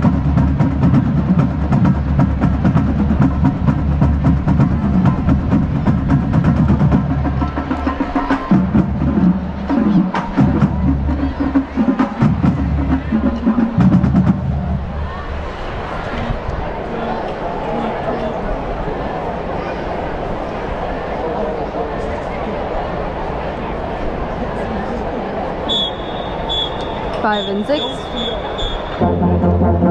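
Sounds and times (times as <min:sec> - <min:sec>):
drumline beat: 0:00.0 - 0:15.0, 0:27.2 - 0:29.9
marching band playing: 0:00.0 - 0:15.1, 0:25.7 - 0:29.9
stadium crowd noise: 0:00.0 - 0:29.9.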